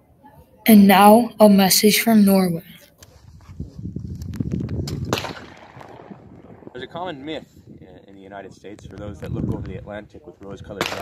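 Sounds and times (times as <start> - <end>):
wind rumbling on microphone: 3.3 - 6.8, 8.6 - 10.8.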